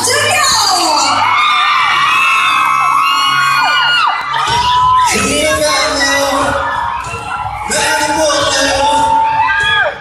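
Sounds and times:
audience screaming and whooping: 0.0 - 10.0.

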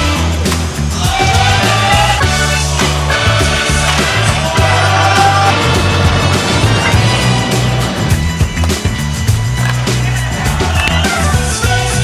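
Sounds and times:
loud background music: 0.0 - 12.0.

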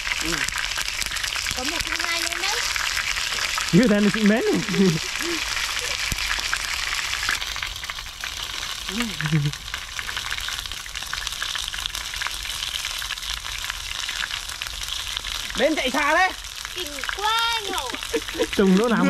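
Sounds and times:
wings deep-frying in hot oil: 0.0 - 19.0.

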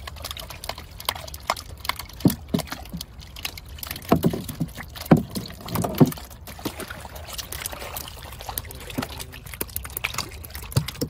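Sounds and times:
fish slapping on boat hull: 0.0 - 11.0.

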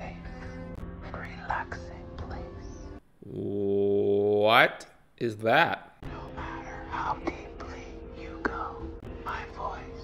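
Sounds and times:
low droning music: 0.0 - 3.0, 6.0 - 10.0.

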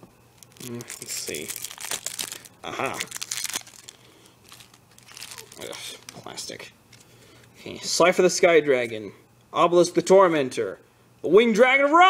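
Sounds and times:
plastic shrink-wrap crinkling: 0.4 - 6.6.

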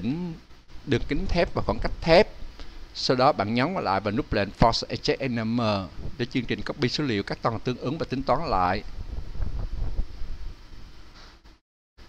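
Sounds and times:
low rumbling wind on microphone: 5.9 - 6.7, 8.0 - 11.0.

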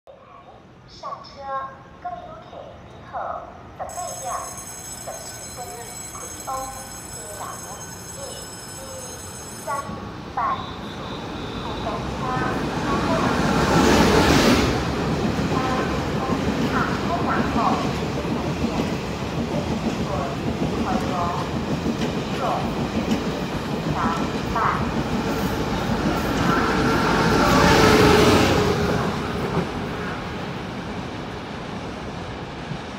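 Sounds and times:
train passing at speed: 0.8 - 32.9.

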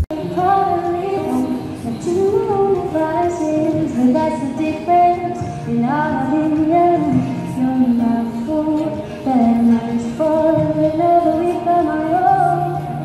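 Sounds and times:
acoustic guitar: 0.0 - 13.0
woman singing: 0.1 - 13.0.

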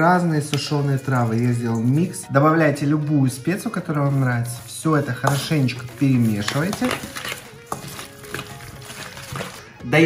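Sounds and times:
soft background music: 0.0 - 10.0
spoon scraping in metal bowl: 3.6 - 9.7.

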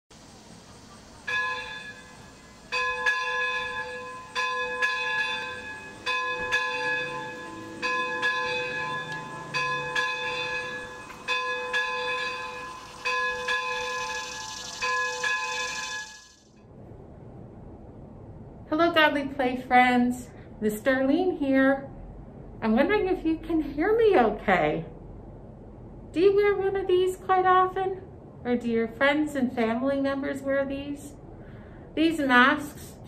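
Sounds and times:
hiss: 0.1 - 2.8, 12.4 - 16.5
church bells ringing: 1.3 - 16.4.

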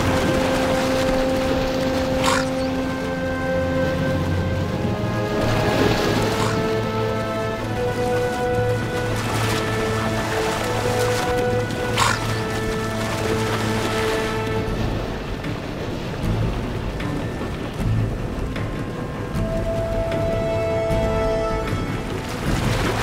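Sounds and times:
sharp splash: 0.0 - 17.8, 21.2 - 23.0
background music: 0.0 - 23.0
white-water rapids rushing: 0.0 - 23.0.

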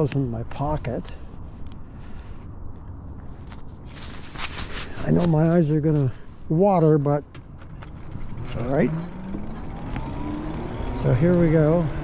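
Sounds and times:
jacket fabric rustling on microphone: 0.6 - 6.6.

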